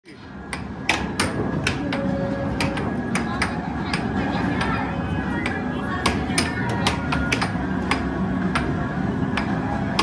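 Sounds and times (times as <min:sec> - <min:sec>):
arcade background noise: 0:00.0 - 0:10.0
air hockey puck clacking: 0:00.5 - 0:04.8, 0:05.4 - 0:10.0
voices: 0:01.6 - 0:10.0.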